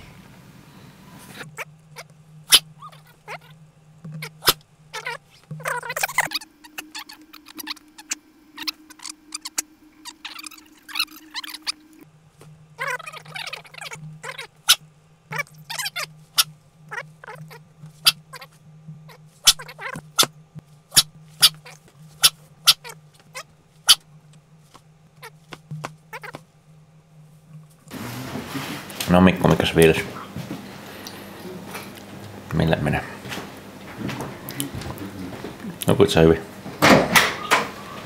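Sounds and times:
scratchy chittering noise: 0:01.2 - 0:12.1, 0:12.8 - 0:20.3
low steady drone: 0:03.5 - 0:17.7.

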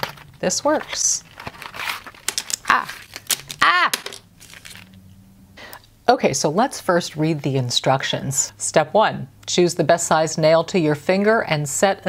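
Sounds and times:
plastic tray crinkling and clicking: 0:00.0 - 0:04.9.

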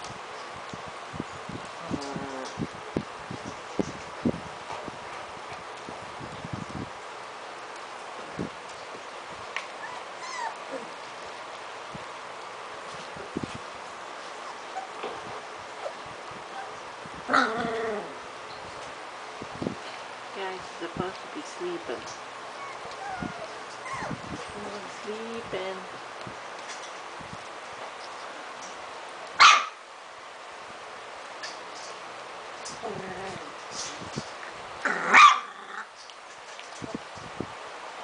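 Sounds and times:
puppies growling and whining: 0:01.8 - 0:02.6, 0:09.6 - 0:11.4, 0:14.2 - 0:18.3, 0:22.4 - 0:24.8, 0:32.7 - 0:33.9, 0:34.8 - 0:36.0
puppy crying: 0:09.8 - 0:11.0, 0:22.5 - 0:24.2
puppy sharp yelp-bark: 0:29.4 - 0:29.8, 0:35.1 - 0:35.5.

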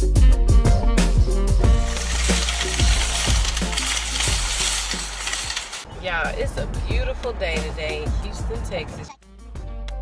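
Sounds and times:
background music with thumping beat: 0:00.0 - 0:01.9
plastic bags rustling: 0:01.7 - 0:05.9.

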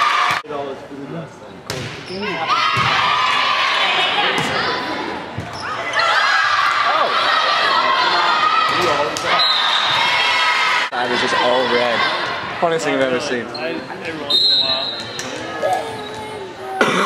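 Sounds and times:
crowd yelling and cheering: 0:00.0 - 0:00.4, 0:02.4 - 0:12.9
volleyball hits echoing: 0:01.7 - 0:02.1, 0:02.7 - 0:03.2.

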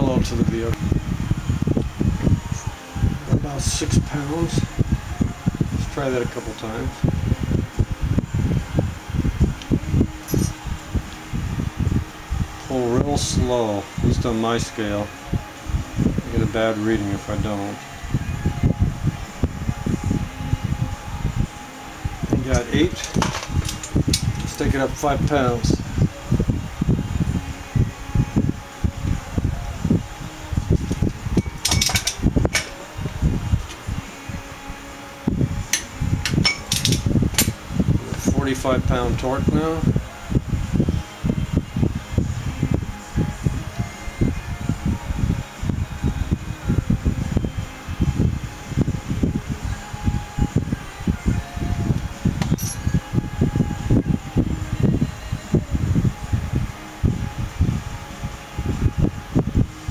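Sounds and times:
wind buffeting microphone: 0:00.0 - 0:14.3, 0:18.0 - 0:59.9.

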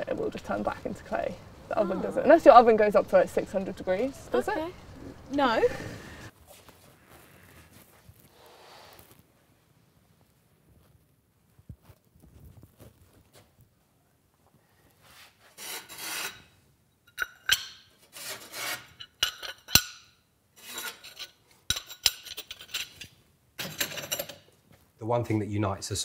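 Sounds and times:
ceramic pieces scraping: 0:15.6 - 0:24.5.

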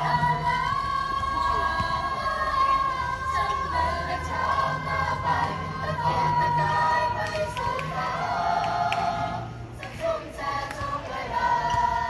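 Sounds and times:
children's choir singing: 0:00.0 - 0:12.0.

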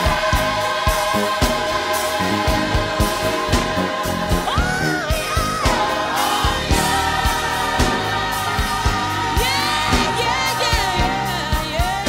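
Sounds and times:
choir singing gospel: 0:00.0 - 0:12.0
steady drum beat: 0:00.0 - 0:12.0.

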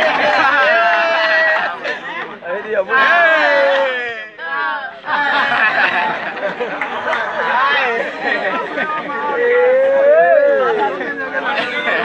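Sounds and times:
people talking over each other: 0:00.0 - 0:12.0.

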